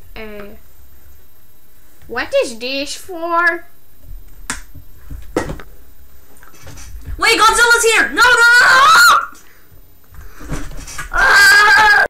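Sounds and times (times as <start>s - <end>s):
microphone handling noise: 3.9s - 8.1s.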